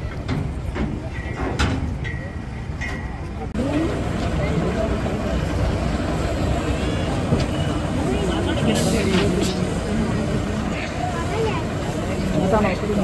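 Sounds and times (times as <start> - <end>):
people talking: 0.0 - 13.0
lorry engine idling: 3.5 - 13.0.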